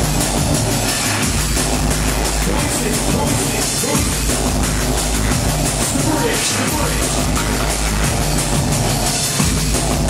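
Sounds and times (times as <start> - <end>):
drum and bass music: 0.0 - 10.0
heavy sub-bass: 0.0 - 10.0.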